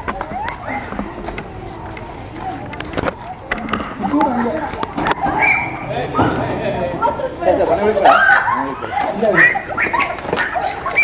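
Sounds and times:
people's voices: 0.0 - 11.0
dog yelping and whining: 9.3 - 11.0.

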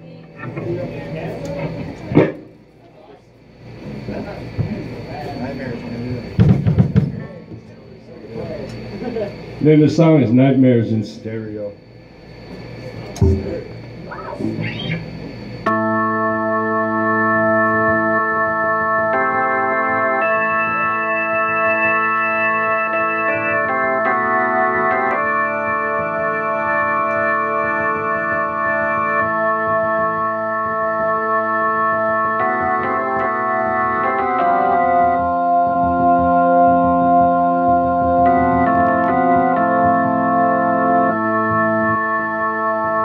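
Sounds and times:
keyboard organ chords: 0.0 - 43.0
low stage noise: 0.0 - 43.0
thump: 2.1 - 2.5.

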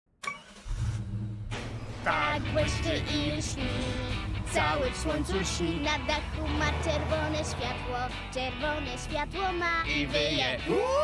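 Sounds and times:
cartoon car engine running: 0.2 - 10.6.

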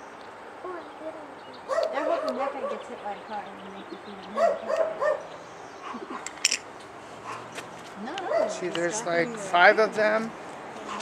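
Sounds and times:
dog barking and yipping: 1.7 - 2.9, 4.4 - 6.3, 7.2 - 7.6, 8.2 - 8.7.

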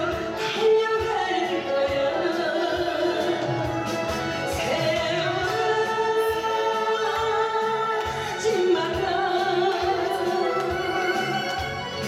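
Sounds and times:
instrumental accompaniment with beat: 0.0 - 12.0
woman singing into microphone: 0.0 - 12.0.

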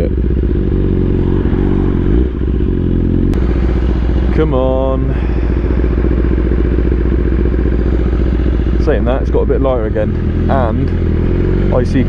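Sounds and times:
motorcycle engine idling: 0.0 - 12.0
man talking: 4.3 - 5.7, 8.8 - 11.0, 11.7 - 12.0.

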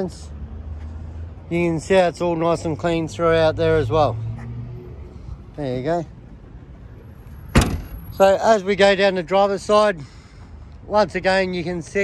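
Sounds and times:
car boot lid slamming: 7.5 - 8.1.

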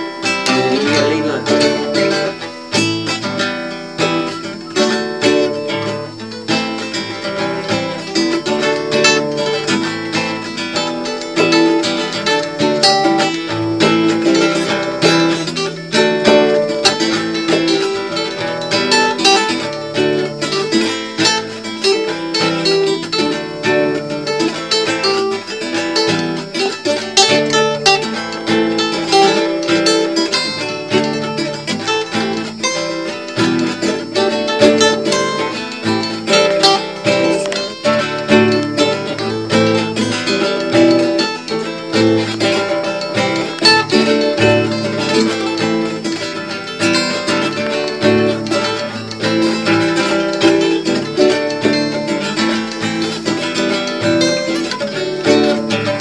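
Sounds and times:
acoustic guitar playing: 0.0 - 56.0.

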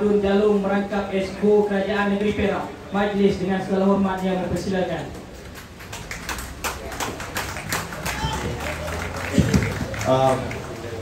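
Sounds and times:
audience clapping: 5.2 - 11.0.

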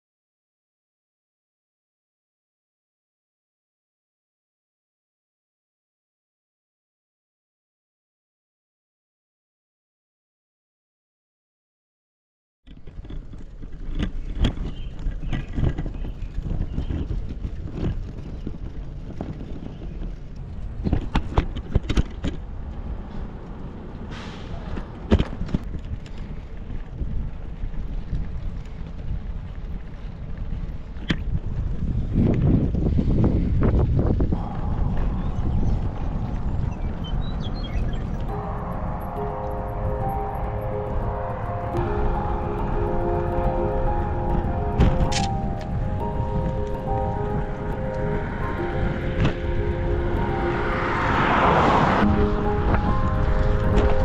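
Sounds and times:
bicycle rattling on road: 12.7 - 39.0, 41.8 - 54.0
wind rumbling on microphone: 12.7 - 54.0
background music: 34.4 - 54.0.

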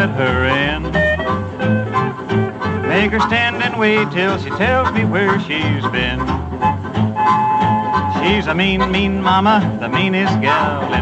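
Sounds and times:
person singing: 0.0 - 1.1, 2.8 - 6.3, 8.1 - 11.0
bouncing bass beat: 0.0 - 11.0
country boogie band playing: 0.0 - 11.0.

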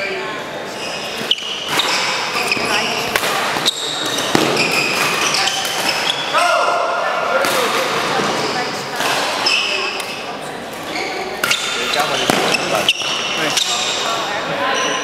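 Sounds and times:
shoes squeaking on floor: 0.0 - 6.4, 8.2 - 15.0
voices in hall: 0.0 - 15.0
rackets striking shuttlecock: 3.1 - 6.0, 11.4 - 13.9.

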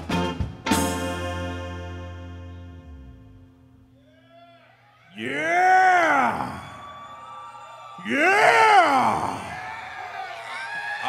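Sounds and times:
man wailing into a microphone: 5.2 - 6.9, 8.0 - 9.6.

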